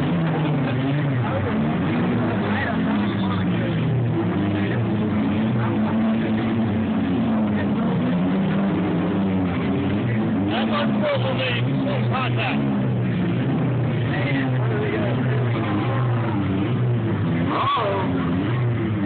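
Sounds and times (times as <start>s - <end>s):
voices: 0.0s - 8.8s, 9.5s - 12.8s, 13.4s - 19.0s
car engines revving: 0.0s - 19.0s.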